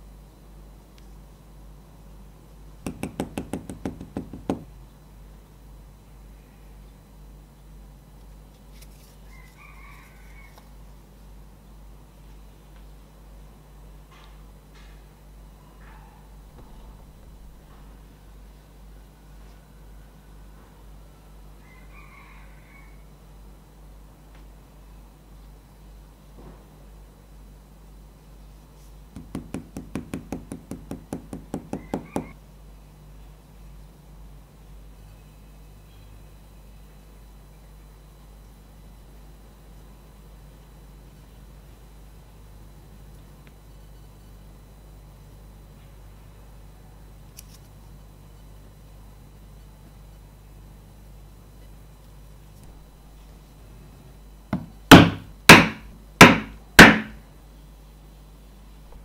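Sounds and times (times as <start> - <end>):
hand tool tapping on leather: 2.9 - 4.7, 29.2 - 32.4, 54.6 - 57.1.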